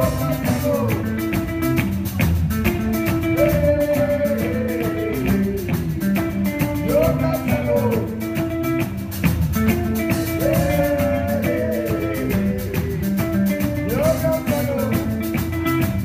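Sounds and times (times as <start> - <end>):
live rock band playing: 0.0 - 16.0.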